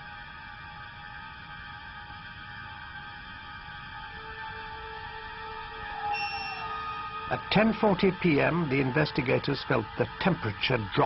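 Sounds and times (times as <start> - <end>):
eerie ambient music: 0.0 - 11.0
note sliding downward: 5.9 - 7.5.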